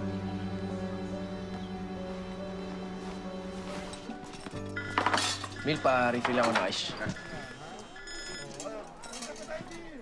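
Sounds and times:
mobile phone ringing: 4.6 - 8.6.

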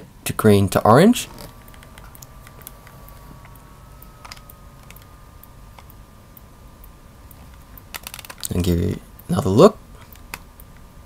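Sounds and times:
faint steady high tone: 0.0 - 11.0.

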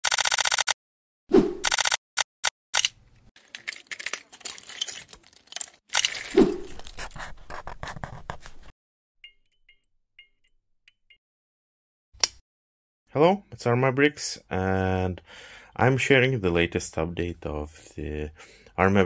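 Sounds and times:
plastic bricks clicking and clattering: 3.4 - 6.3.

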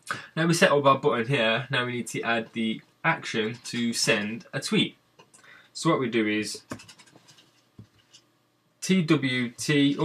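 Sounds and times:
computer keyboard keystrokes: 6.7 - 7.1.

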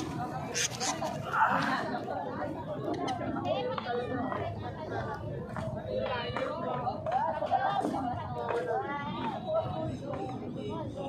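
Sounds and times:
indistinct chatter: 0.0 - 11.0.

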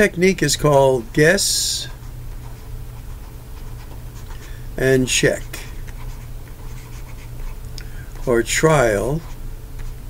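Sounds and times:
stylus scratching on tablet: 1.7 - 7.6, 8.2 - 10.0.

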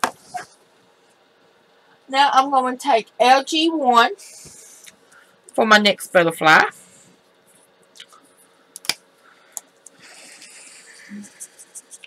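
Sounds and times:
marker nib rubbing on paper: 10.7 - 12.0.

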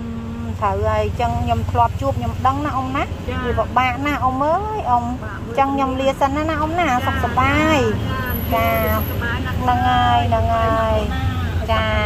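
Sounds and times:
elderly woman speaking: 0.1 - 12.0.

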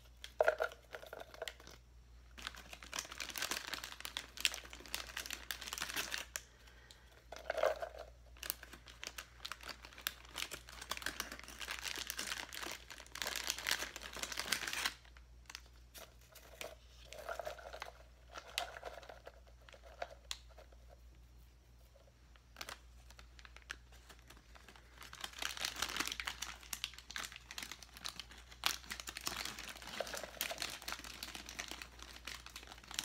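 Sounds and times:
plastic crinkling and rustling: 0.0 - 20.8, 22.4 - 33.0.

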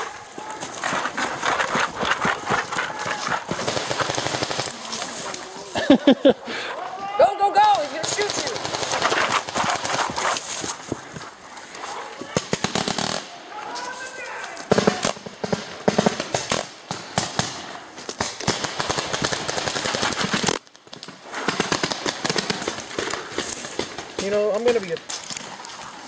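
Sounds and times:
paintball markers firing: 0.8 - 5.1.

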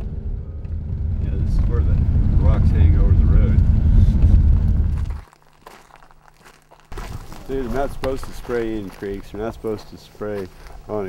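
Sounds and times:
vehicle low rumble: 0.0 - 5.4
footsteps on gravel: 4.2 - 11.0.

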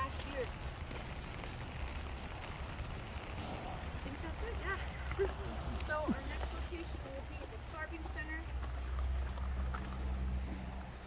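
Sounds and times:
light rain hissing: 0.0 - 8.4
wind rumbling on microphone: 0.0 - 11.0.

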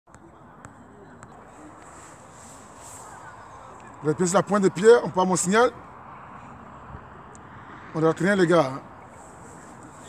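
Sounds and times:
distant indistinct voices: 0.1 - 10.0.

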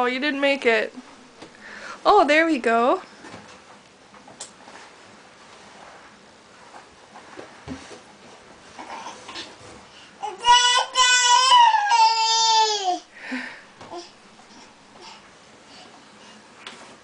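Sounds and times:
toddler whining cry: 10.2 - 13.1.

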